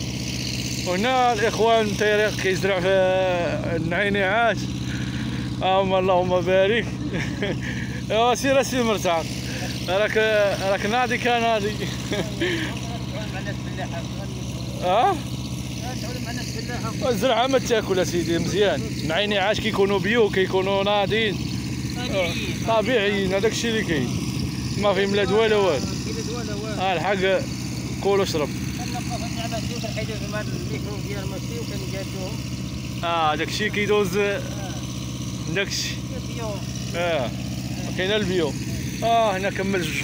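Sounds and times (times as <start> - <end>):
low engine hum: 0.0 - 40.0
people talking: 0.8 - 5.0, 5.6 - 32.4, 33.0 - 40.0.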